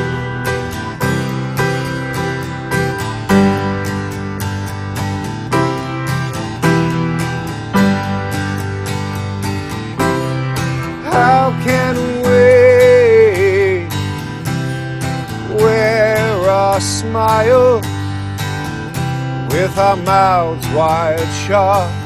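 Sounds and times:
acoustic guitar strumming: 0.0s - 22.0s
sustained keyboard chords: 0.0s - 22.0s.

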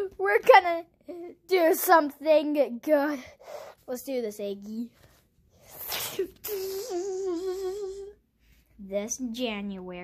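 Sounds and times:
child humming: 5.7s - 8.2s.

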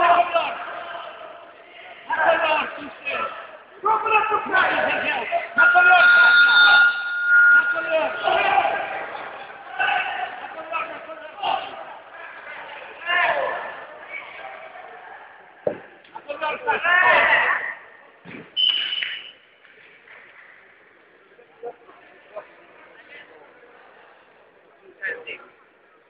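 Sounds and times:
men shouting instructions: 0.0s - 6.7s.

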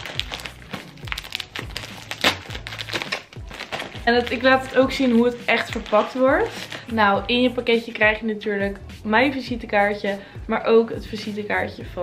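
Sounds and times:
foil mailer crinkling: 0.0s - 6.9s
music with low beat: 0.0s - 12.0s.

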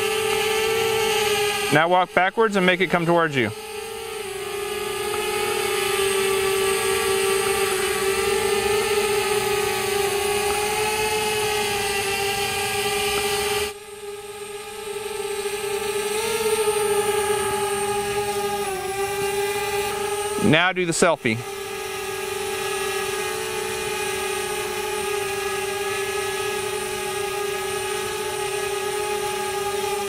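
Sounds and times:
drone propellers whining: 0.0s - 30.0s.

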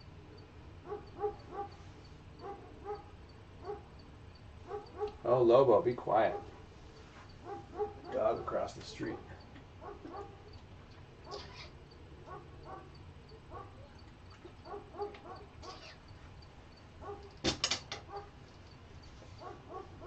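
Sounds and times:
dog whining: 11.2s - 11.7s, 14.6s - 16.1s.

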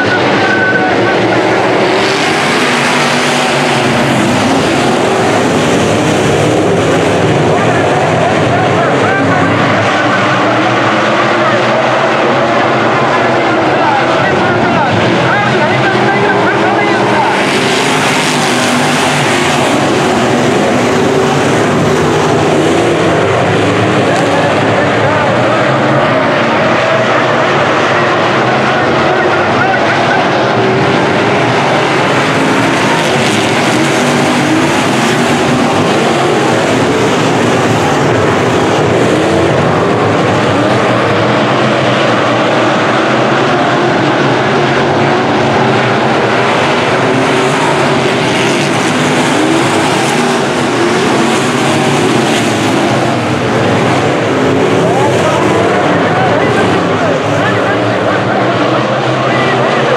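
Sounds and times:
race car engines racing: 0.0s - 59.9s.

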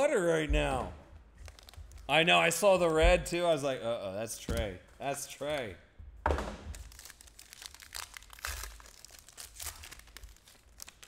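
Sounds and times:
foil wrapper crinkling and tearing: 1.4s - 2.1s, 6.7s - 11.0s.

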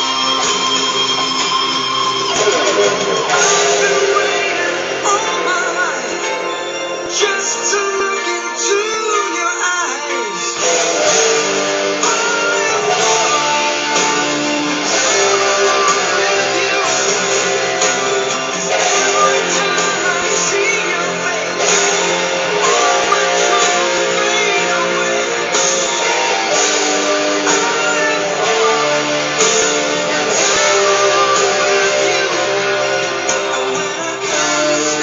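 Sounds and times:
guitar chords strummed and picked: 0.0s - 35.0s.

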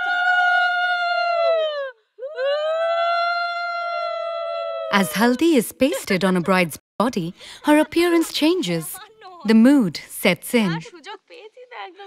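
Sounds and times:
breath: 7.4s - 7.7s.

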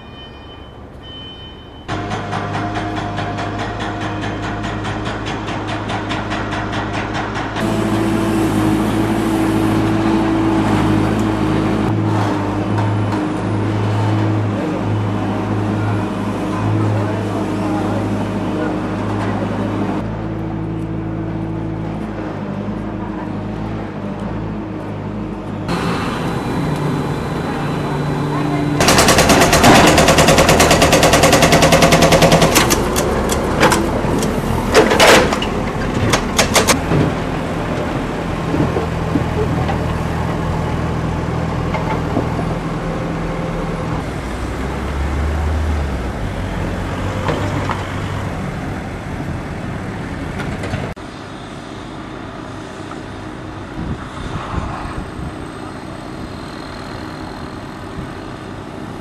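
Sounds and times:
diesel engines running: 1.9s - 59.0s
loud rapid rattle: 28.8s - 33.0s.

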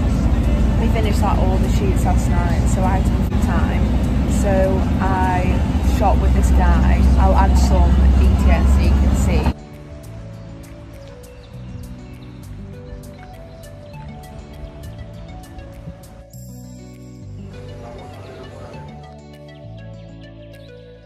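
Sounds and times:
vehicle road and engine rumble: 0.0s - 9.6s
woman talking: 0.8s - 9.6s
background music with beat: 9.5s - 21.0s.

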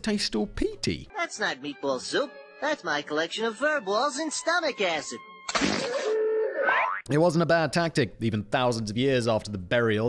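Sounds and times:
spluttering spit: 5.5s - 6.9s.

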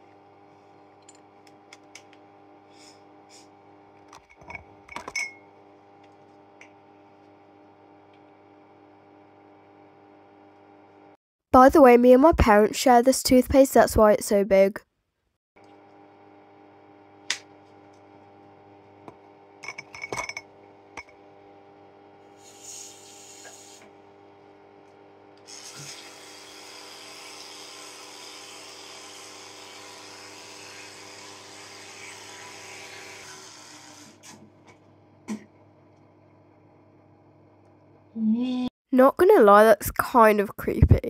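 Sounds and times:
electric toothbrush humming: 2.3s - 4.1s, 20.6s - 34.4s
toothbrush scrubbing hiss: 22.4s - 23.9s, 25.5s - 26.1s.

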